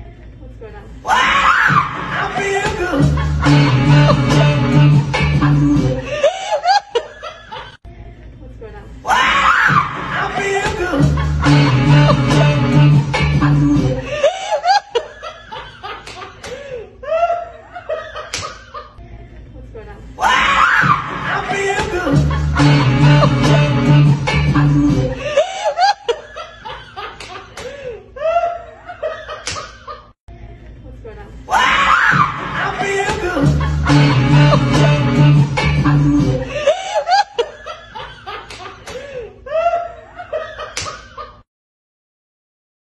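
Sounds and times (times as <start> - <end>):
woman laughing loudly: 1.2 - 4.3, 5.5 - 7.8, 9.7 - 12.4, 13.9 - 19.0, 19.8 - 23.5, 25.0 - 30.1, 31.6 - 35.0, 35.9 - 41.4
loud voice rising in pitch: 31.6 - 36.5.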